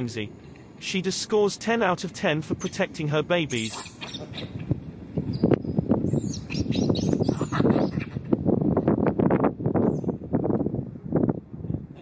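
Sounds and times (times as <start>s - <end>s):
birds chirping: 1.8s - 8.2s.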